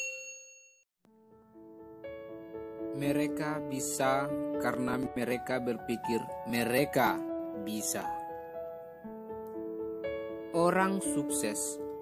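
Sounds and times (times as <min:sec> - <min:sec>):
bell ding: 0:00.0 - 0:00.8
soft music: 0:01.1 - 0:12.0.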